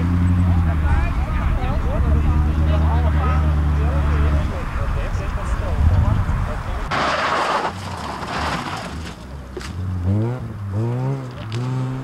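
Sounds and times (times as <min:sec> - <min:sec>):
rally car engine rumbling: 0:00.0 - 0:12.0.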